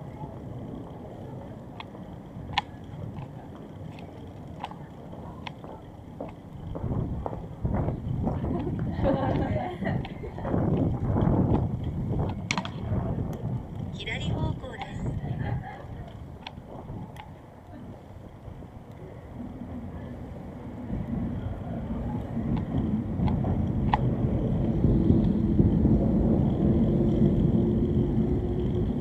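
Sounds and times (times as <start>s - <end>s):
low street rumble: 0.0s - 29.0s
voices of passersby: 0.0s - 29.0s.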